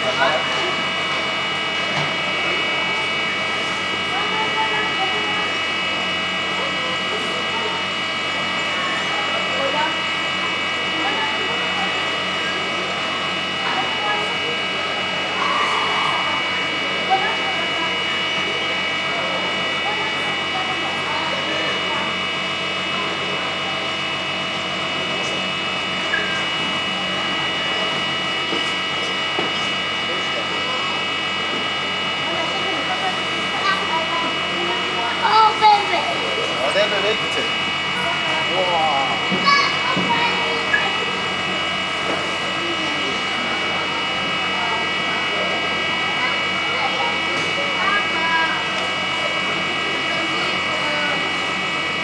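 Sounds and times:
blower fan rushing airflow: 0.0s - 52.0s
faint voices murmuring: 0.0s - 52.0s
high fan whine: 0.0s - 52.0s.

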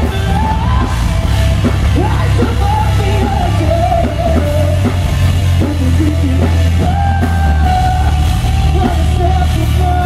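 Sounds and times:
held lead vocal: 0.0s - 10.0s
rock band playing: 0.0s - 10.0s.

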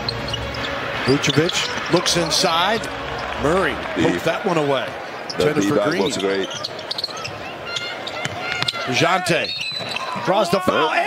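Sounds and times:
sneaker squeaks: 0.0s - 2.3s, 5.3s - 10.9s
arena background noise: 0.0s - 11.0s.

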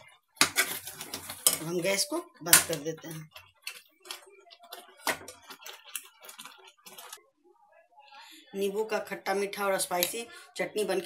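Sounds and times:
thick chutney popping and clicking: 2.4s - 7.2s.

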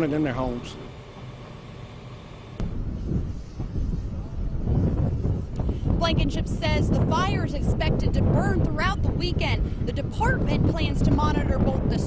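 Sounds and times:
wind buffeting microphone: 2.6s - 12.0s.

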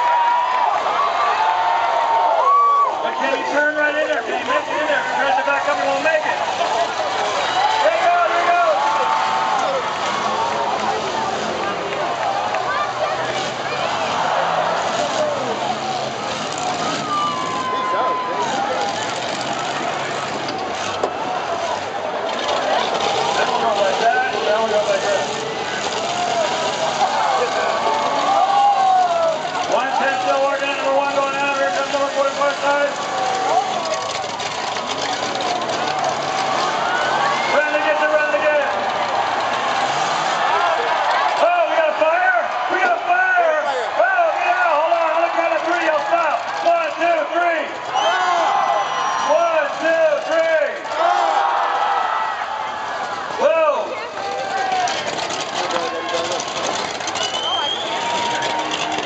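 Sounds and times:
crowd talking and calling out: 0.0s - 59.0s
motorhome engines running: 0.0s - 59.0s.

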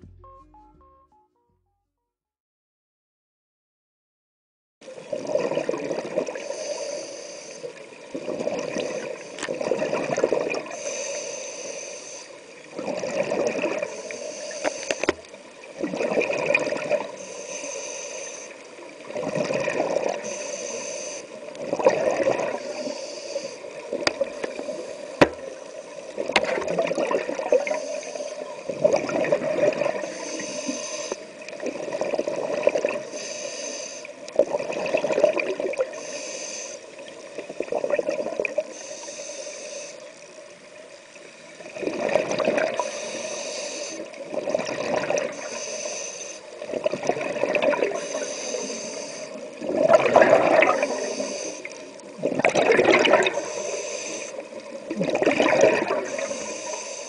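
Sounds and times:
scuba regulator inhale hiss: 6.3s - 7.8s, 10.6s - 12.6s, 13.8s - 15.4s, 17.1s - 18.8s, 20.1s - 21.5s, 22.4s - 26.3s, 27.5s - 28.6s, 29.9s - 31.4s, 32.9s - 34.2s, 35.8s - 37.1s, 38.6s - 40.2s, 42.7s - 44.2s, 45.2s - 46.6s, 47.8s - 49.6s, 50.5s - 52.1s, 53.3s - 54.8s, 55.8s - 57.0s
gurgling exhaust bubbles: 49.6s - 51.0s, 52.2s - 53.4s, 54.9s - 56.1s.

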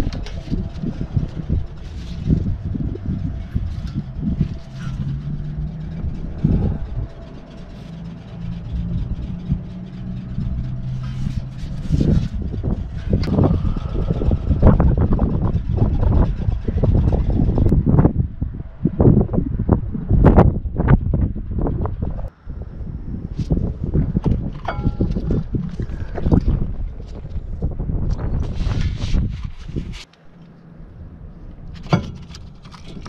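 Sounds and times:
vehicle engine running: 0.0s - 33.0s
knocks and clatter of tools: 24.2s - 26.3s, 31.8s - 33.0s.

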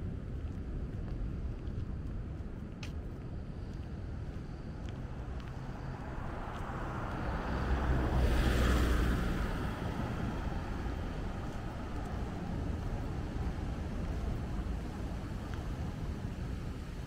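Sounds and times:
wind rumble on microphone: 0.0s - 17.0s
car passing close by: 5.0s - 13.7s.

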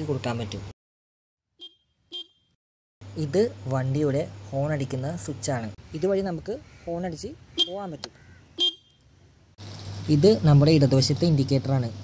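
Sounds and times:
scooter horn toot: 1.5s - 2.6s, 8.6s - 9.0s.

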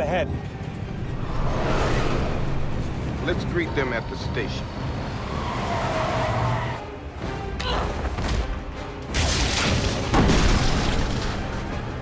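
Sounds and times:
action film music score: 0.0s - 12.0s.

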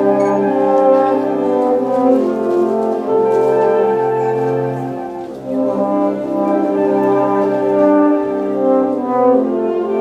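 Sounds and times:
brass: 0.0s - 10.0s
concert wind band playing chords: 0.0s - 10.0s.

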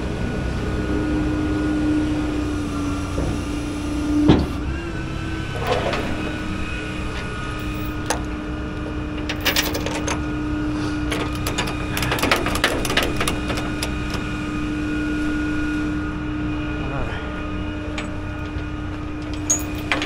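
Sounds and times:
tow truck engine humming: 0.0s - 20.0s
metallic clicks and clatters: 11.1s - 14.2s, 17.9s - 20.0s.

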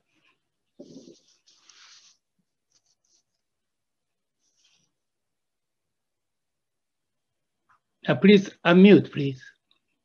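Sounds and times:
faint rustles on microphone: 0.0s - 3.6s, 4.3s - 5.1s.

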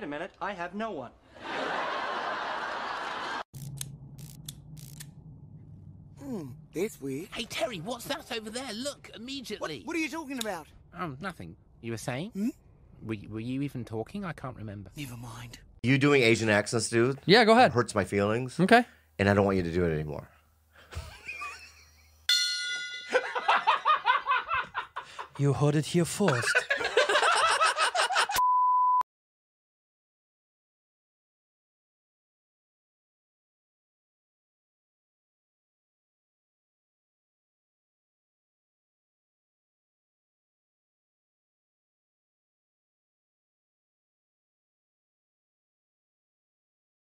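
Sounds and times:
low steady hum: 3.6s - 17.1s
laughter in choppy bursts: 20.8s - 22.1s, 26.3s - 28.4s.

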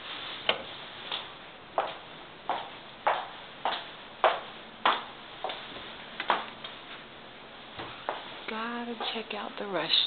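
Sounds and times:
footsteps clicking: 0.5s - 7.0s, 7.8s - 9.3s.

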